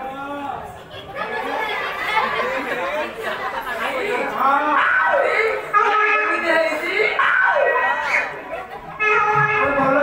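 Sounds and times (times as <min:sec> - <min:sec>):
chatter of several voices: 0:00.0 - 0:10.0.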